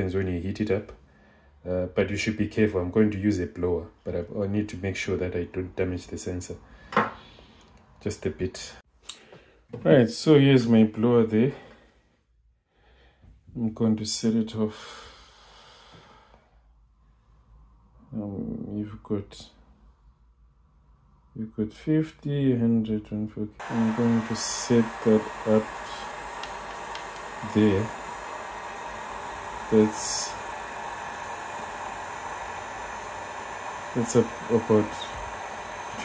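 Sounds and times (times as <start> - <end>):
faint breathy hiss: 14.6 - 17.7, 23.6 - 36.0
hot air gun fan rushing: 23.6 - 36.0.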